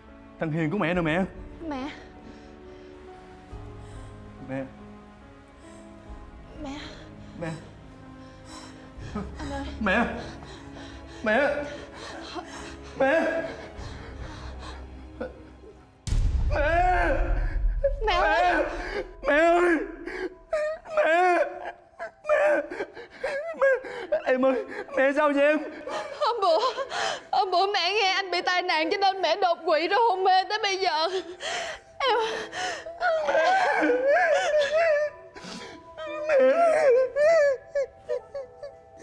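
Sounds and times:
man sobbing: 0:07.3 - 0:15.9, 0:16.5 - 0:27.3, 0:31.2 - 0:39.0
man wailing and crying out: 0:12.9 - 0:13.8, 0:16.5 - 0:25.0, 0:33.0 - 0:35.3.

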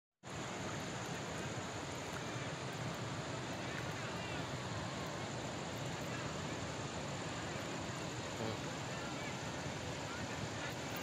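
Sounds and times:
rushing outdoor background noise: 0:00.2 - 0:11.0.

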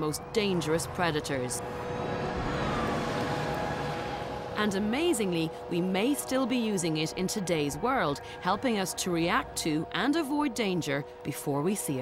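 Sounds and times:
vehicle passing on road: 0:00.2 - 0:07.6.

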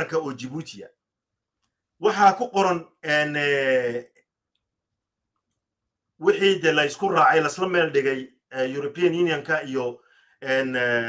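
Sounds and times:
man's voice: 0:00.0 - 0:00.9, 0:02.0 - 0:04.0, 0:06.2 - 0:11.0
faint clicks: 0:01.5 - 0:01.9, 0:04.1 - 0:05.7.

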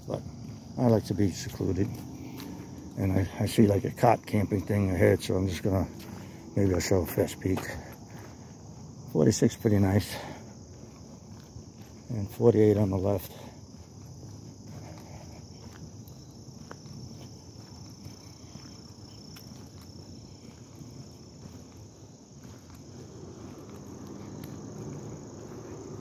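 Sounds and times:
crickets chirping: 0:00.0 - 0:26.0
footsteps on paved road: 0:00.0 - 0:26.0.

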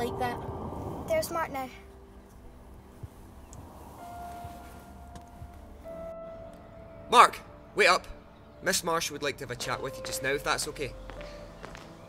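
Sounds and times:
film music with sustained notes: 0:00.0 - 0:12.0.

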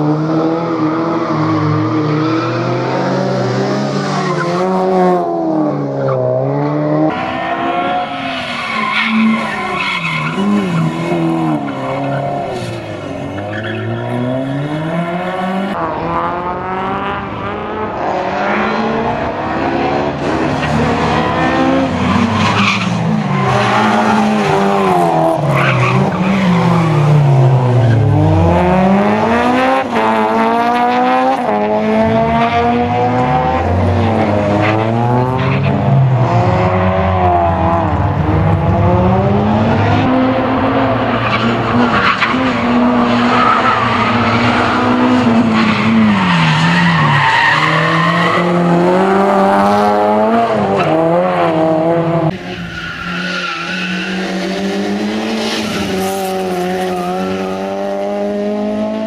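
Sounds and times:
race car engine revving: 0:00.0 - 0:59.0.

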